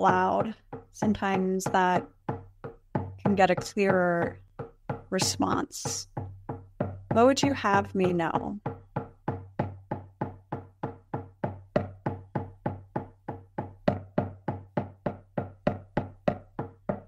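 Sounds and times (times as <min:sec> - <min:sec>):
hand drum beating steadily: 0:00.0 - 0:17.0.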